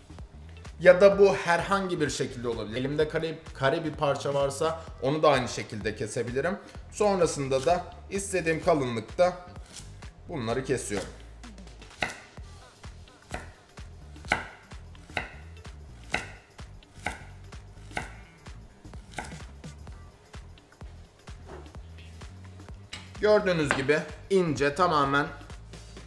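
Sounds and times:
knife slicing carrot on board: 9.6 - 10.0, 11.9 - 12.3, 13.3 - 13.6, 14.2 - 18.3, 19.1 - 19.6
blade knocking on wood: 14.3 - 15.5, 16.1 - 17.3, 17.9 - 18.2, 22.9 - 23.9.

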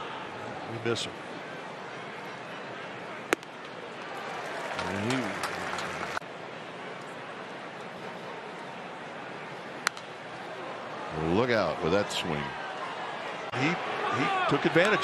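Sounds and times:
ballpark crowd murmur: 0.0 - 15.0.

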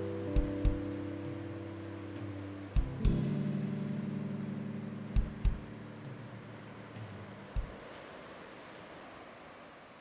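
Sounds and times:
acoustic guitar chord ringing: 0.0 - 6.6.

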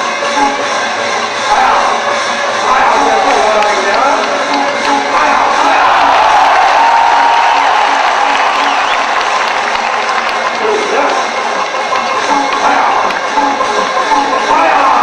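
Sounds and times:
music with repeating beat: 0.0 - 15.0
stadium crowd cheering: 1.5 - 15.0.

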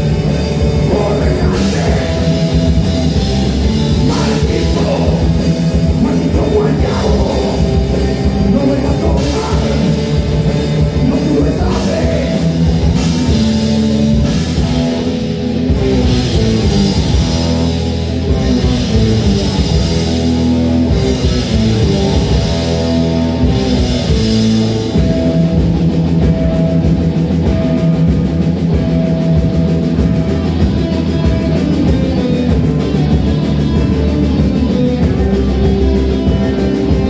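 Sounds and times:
bass guitar: 0.0 - 37.0
drum kit: 0.0 - 37.0
electric guitars: 0.0 - 37.0.

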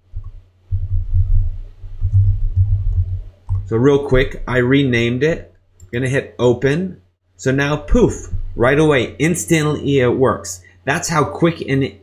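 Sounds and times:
keyboard typing thumps through desk: 0.2 - 4.3.

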